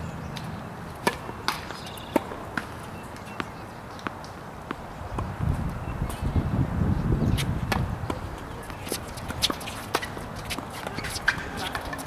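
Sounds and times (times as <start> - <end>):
racket striking tennis ball: 1.0 - 5.3, 7.4 - 12.0.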